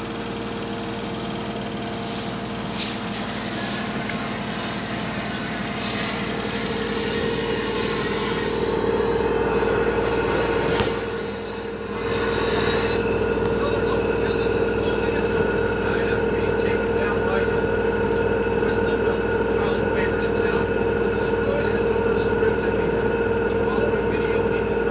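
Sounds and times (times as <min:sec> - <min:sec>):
washing machine spinning: 0:00.0 - 0:24.9.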